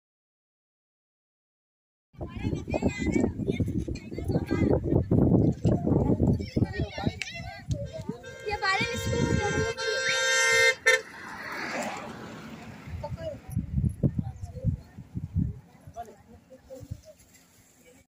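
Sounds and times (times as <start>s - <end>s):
people's voices: 2.2s - 18.0s
steady horn tone: 7.8s - 11.5s.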